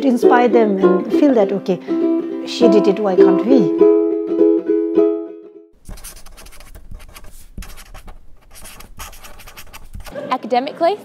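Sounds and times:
pen scratching on paper: 0:05.8 - 0:10.2.

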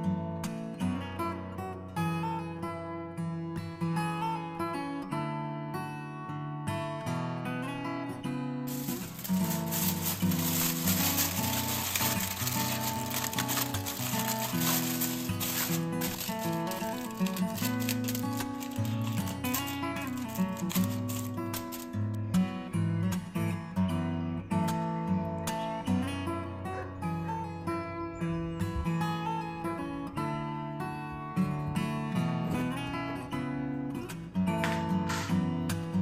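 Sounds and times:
acoustic guitar music: 0:00.0 - 0:36.0
aluminium foil crinkling: 0:08.7 - 0:22.2.

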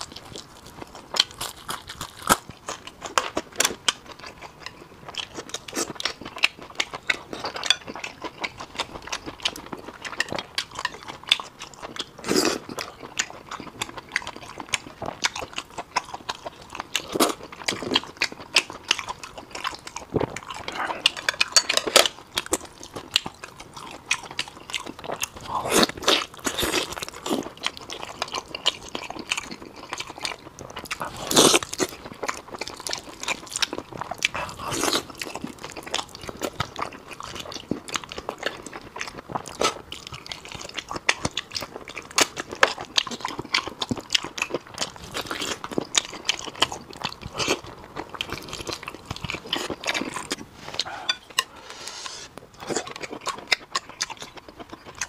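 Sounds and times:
person chewing meat: 0:00.0 - 0:55.0.

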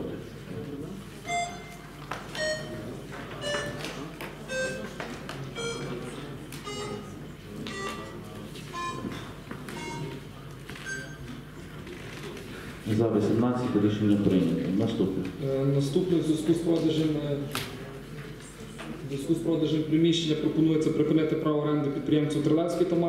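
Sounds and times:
low room murmur: 0:00.0 - 0:23.0
slow electronic melody: 0:01.3 - 0:10.2, 0:10.9 - 0:11.3.

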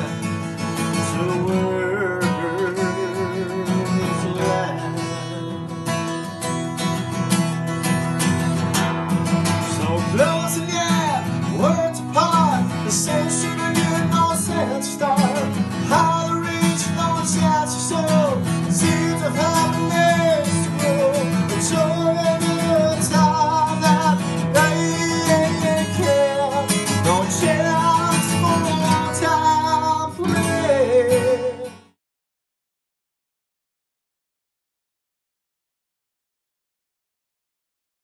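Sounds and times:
acoustic guitar strumming: 0:00.0 - 0:32.0
person singing: 0:01.0 - 0:05.8, 0:09.6 - 0:32.0.

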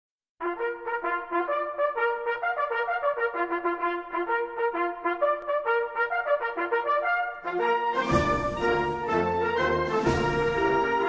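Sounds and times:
brass band playing a march: 0:00.4 - 0:11.0.

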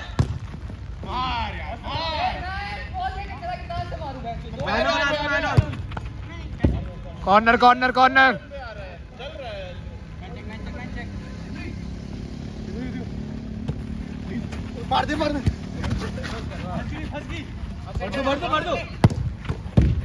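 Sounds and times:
football kicked on artificial turf: 0:00.0 - 0:00.5, 0:19.0 - 0:20.0
players shouting: 0:01.0 - 0:05.8
sharp thuds of ball: 0:19.0 - 0:20.0.

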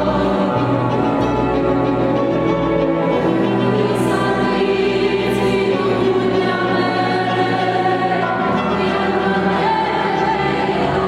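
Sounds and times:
instrumental ensemble accompaniment: 0:00.0 - 0:11.0.

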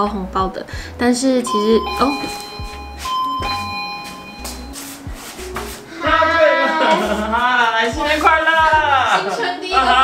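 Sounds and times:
two-tone doorbell chime: 0:01.4 - 0:04.8.

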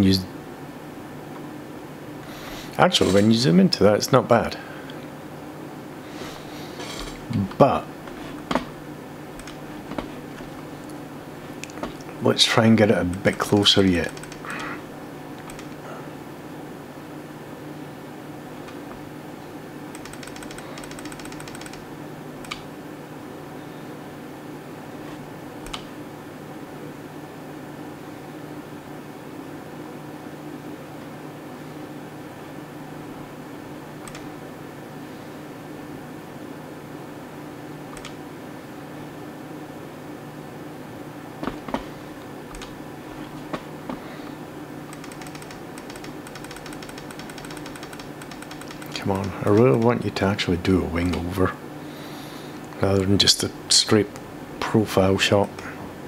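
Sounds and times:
computer fan humming: 0:00.0 - 0:56.0
sharp clicks of computer controls: 0:02.7 - 0:03.3, 0:09.4 - 0:11.0, 0:11.6 - 0:12.2, 0:13.0 - 0:14.8, 0:15.4 - 0:15.8, 0:19.9 - 0:22.7, 0:25.6 - 0:25.9, 0:34.0 - 0:34.4, 0:37.9 - 0:38.2, 0:42.5 - 0:42.8, 0:44.9 - 0:50.1, 0:55.4 - 0:55.7
rapid ticking: 0:09.4 - 0:09.7, 0:13.1 - 0:14.8, 0:15.4 - 0:15.8, 0:19.9 - 0:22.6, 0:44.9 - 0:50.1.

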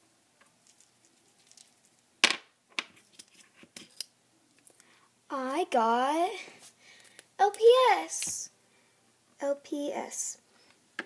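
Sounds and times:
paper rustling in plastic cup: 0:00.6 - 0:02.0.

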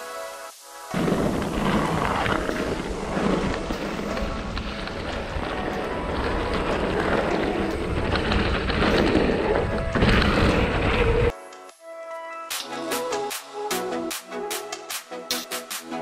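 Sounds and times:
tyres crunching on stony trail: 0:00.9 - 0:11.3.

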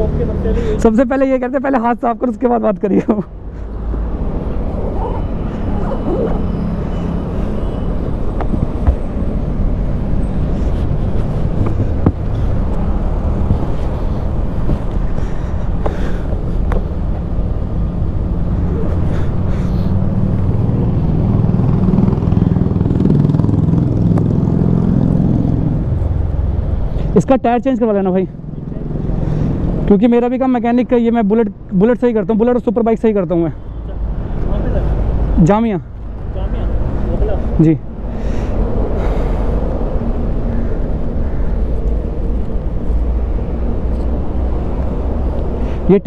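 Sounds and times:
low rumble of vehicle engines: 0:00.0 - 0:46.0
traffic passing: 0:00.0 - 0:46.0.

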